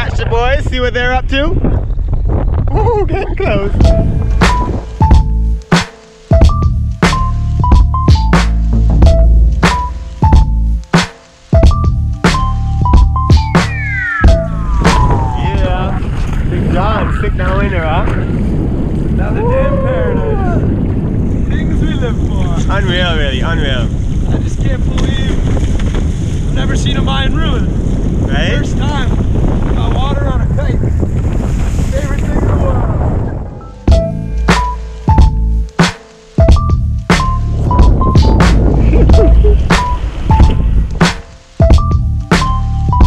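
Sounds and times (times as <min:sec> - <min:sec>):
wind on microphone: 0:00.0 - 0:05.6, 0:13.7 - 0:34.2, 0:36.4 - 0:42.3
music track: 0:03.8 - 0:16.1, 0:33.6 - 0:43.0
falling pitch sweep: 0:13.4 - 0:16.5
sudden loud hit: 0:13.6 - 0:16.5
indistinct voices: 0:14.6 - 0:17.4
person whooping and hollering: 0:19.2 - 0:20.7.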